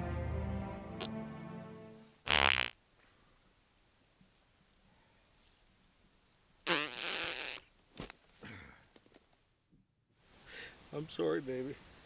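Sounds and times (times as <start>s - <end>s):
buzzy fart: 2.2s - 2.8s, 6.6s - 7.6s.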